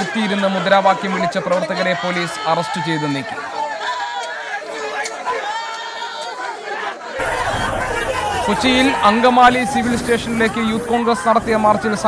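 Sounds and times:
crowd of protesters shouting: 0:00.0 - 0:12.0.

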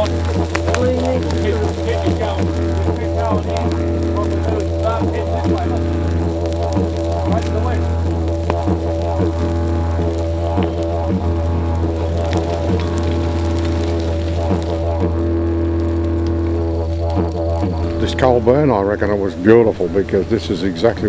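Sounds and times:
didgeridoo drone: 0:00.0 - 0:21.0.

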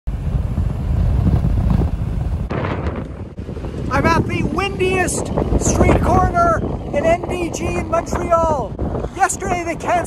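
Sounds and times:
wind gusts buffeting microphone: 0:00.1 - 0:10.0.

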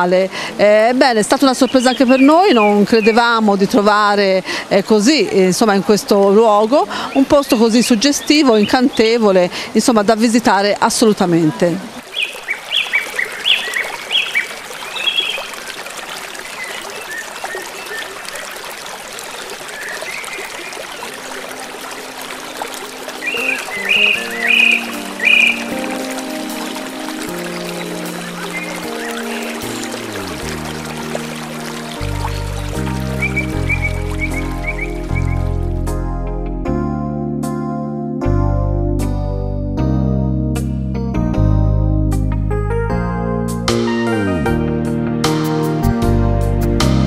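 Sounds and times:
river water rushing: 0:00.0 - 0:35.8
birds chirping: 0:01.0 - 0:04.0, 0:05.1 - 0:09.5, 0:10.9 - 0:35.8
keyboard music: 0:21.0 - 0:47.0.

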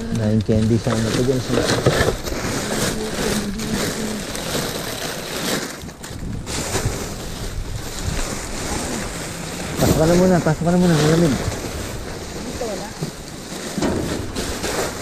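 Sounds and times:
plastic bags rustling: 0:00.0 - 0:15.0.

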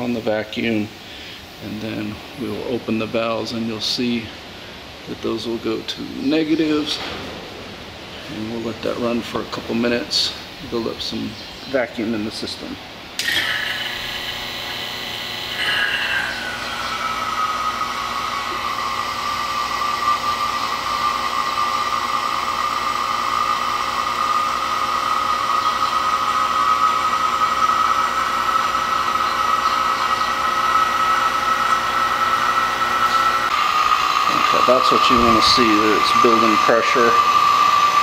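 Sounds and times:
vacuum pump whining: 0:13.0 - 0:38.0.

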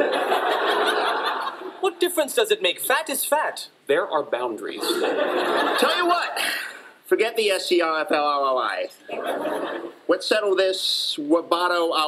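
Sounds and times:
studio audience laughing: 0:00.0 - 0:01.8, 0:04.8 - 0:06.4, 0:09.0 - 0:10.1
man speaking: 0:01.8 - 0:05.2, 0:05.8 - 0:09.0, 0:10.1 - 0:12.0.

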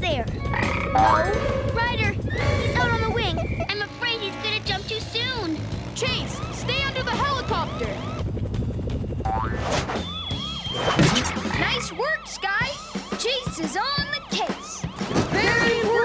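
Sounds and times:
action music: 0:00.0 - 0:16.0
cartoon police siren yelping: 0:00.5 - 0:03.7, 0:06.1 - 0:08.2, 0:10.1 - 0:16.0.

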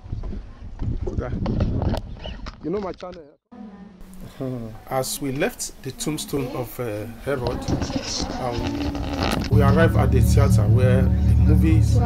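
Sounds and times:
wind buffeting microphone: 0:00.0 - 0:03.0.

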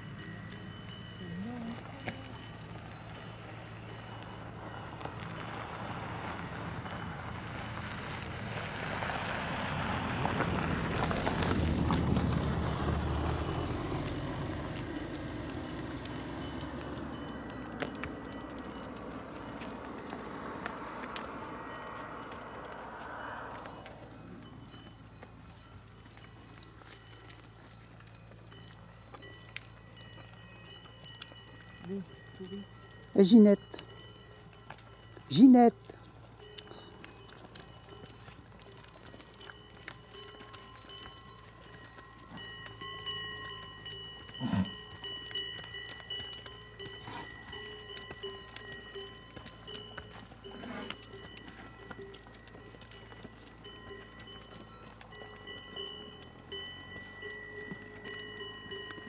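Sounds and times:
cow hooves clopping on asphalt: 0:00.0 - 0:59.0.

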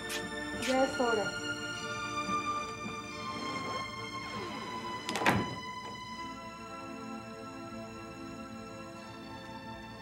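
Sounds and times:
slow music with held tones: 0:00.0 - 0:10.0.

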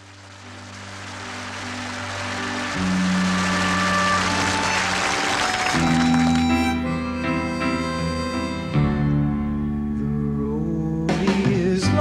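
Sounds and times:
band playing slow instrumental: 0:00.0 - 0:12.0.

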